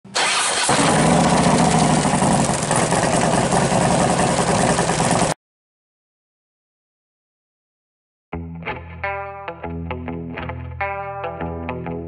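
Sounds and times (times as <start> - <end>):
vehicle engine starting: 0.1 - 5.4.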